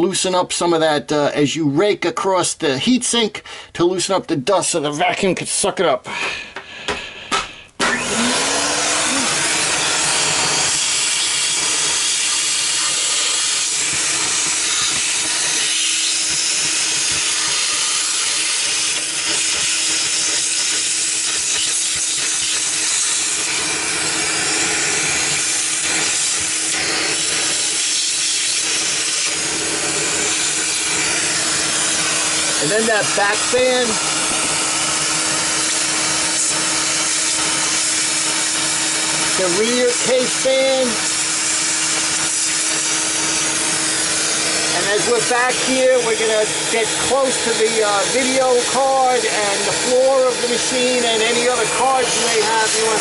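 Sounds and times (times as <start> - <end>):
vacuum cleaner running: 6.1 - 53.0.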